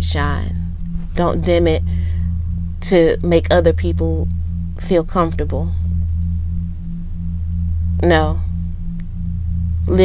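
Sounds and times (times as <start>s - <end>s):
low drone: 0.0s - 10.0s
pulsing tone: 0.0s - 10.0s.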